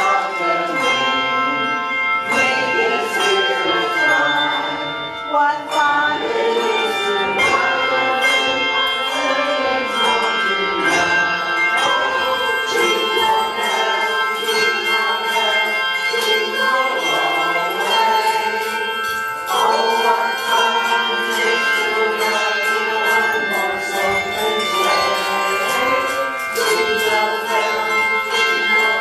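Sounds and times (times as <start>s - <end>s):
handbell choir playing: 0.0s - 29.0s.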